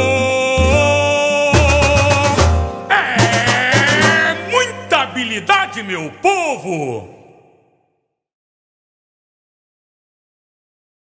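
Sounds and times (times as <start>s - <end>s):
samba music ending: 0.6s - 4.6s.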